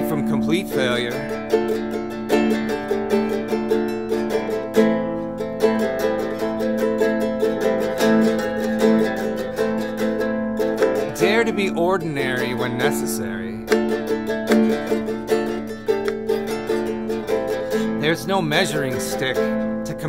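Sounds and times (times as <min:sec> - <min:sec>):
plucked nylon-string notes: 0:00.0 - 0:20.0.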